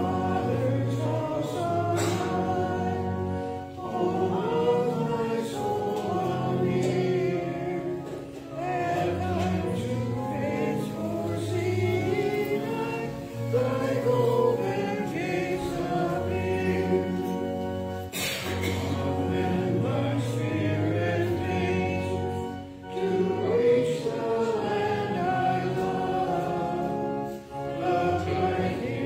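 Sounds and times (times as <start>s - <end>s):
congregation singing a hymn: 0.0s - 29.0s.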